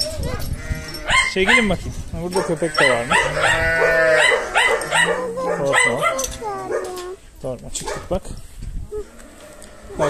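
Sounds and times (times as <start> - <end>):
dog barking: 1.1 - 1.7, 2.4 - 7.0, 7.8 - 8.1.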